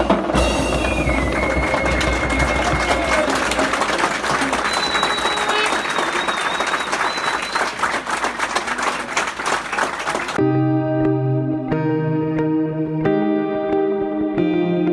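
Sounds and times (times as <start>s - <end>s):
crowd clapping: 0.0s - 10.4s
crowd voices: 0.0s - 10.4s.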